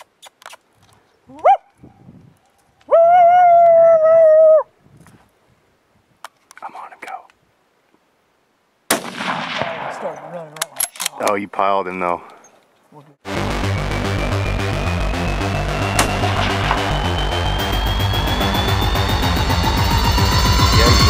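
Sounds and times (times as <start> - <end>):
gunshot ringing out: 8.9 - 10.4
loud steady call: 13.3 - 21.0
short rising call: 13.3 - 21.0.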